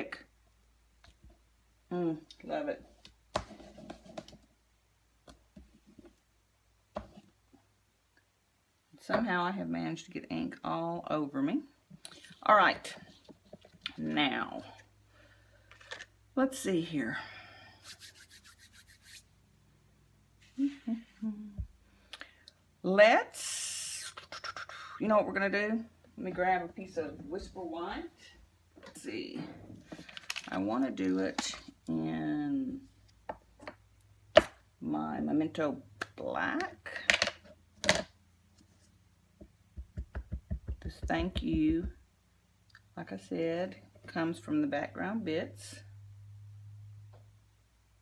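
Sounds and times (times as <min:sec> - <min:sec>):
hand rubbing strokes: 0:17.7 - 0:19.4.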